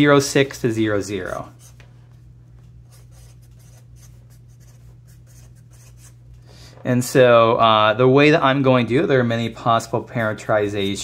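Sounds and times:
steady low hum: 0:00.0 - 0:11.0
marker writing on paper: 0:02.9 - 0:06.2.

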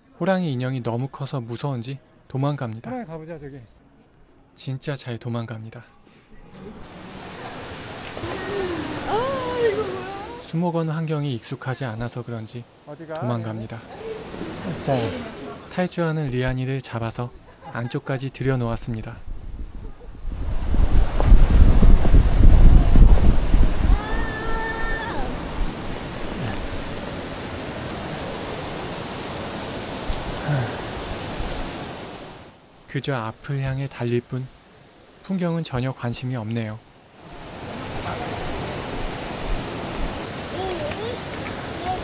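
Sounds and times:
toddler crying: 0:08.2 - 0:10.4, 0:23.9 - 0:25.4, 0:40.5 - 0:42.0
wind buffeting microphone: 0:19.1 - 0:32.2
steady rushing noise: 0:19.2 - 0:32.6.

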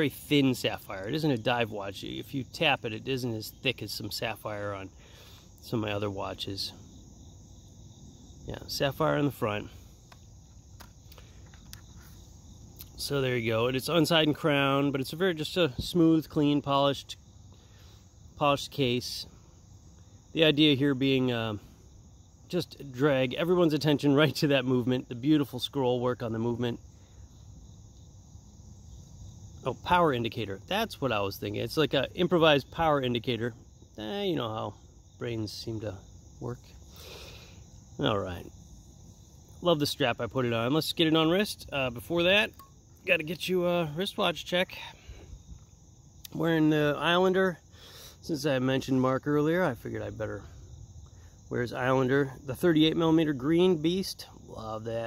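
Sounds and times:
insects chirring: 0:00.0 - 0:55.0
soft rustle: 0:10.7 - 0:12.3.

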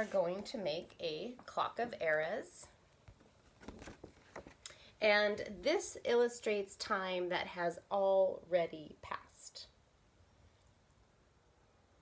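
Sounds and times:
laminated paper rustling: 0:00.0 - 0:04.6.

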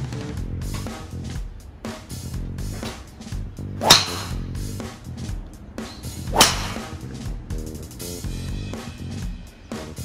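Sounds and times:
background music: 0:00.0 - 0:10.0
clubhead striking ball: 0:03.8 - 0:04.7, 0:06.2 - 0:07.0
golf club swish: 0:03.8 - 0:04.8, 0:06.2 - 0:07.2.

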